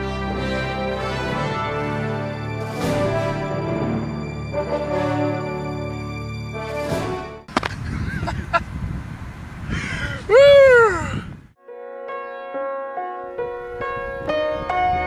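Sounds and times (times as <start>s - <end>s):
man whooping: 9.9s - 11.4s
soft piano-like music: 11.6s - 15.0s.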